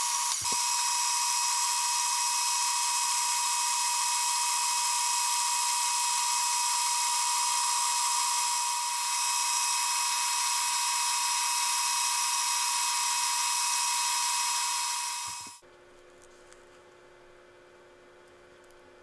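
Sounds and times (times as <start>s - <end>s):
metal lathe whining: 0.0s - 15.6s.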